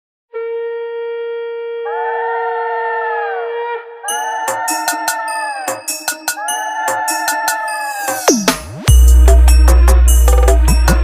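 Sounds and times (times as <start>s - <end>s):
conch shell blown: 0.3s - 2.0s.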